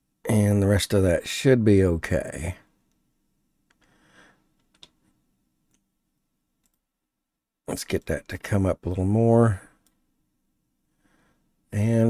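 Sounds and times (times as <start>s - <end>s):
faint computer mouse clicks: 4.6s - 5.1s.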